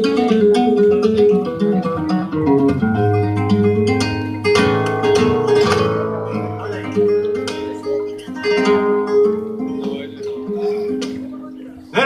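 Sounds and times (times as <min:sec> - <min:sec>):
flamenco acoustic guitar: 0:00.0 - 0:12.0.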